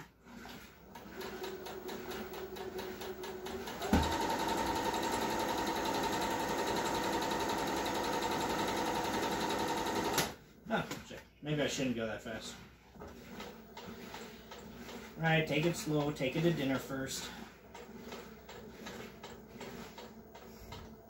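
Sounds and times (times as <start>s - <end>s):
sewing machine stitching: 0.0s - 10.4s, 13.0s - 21.0s.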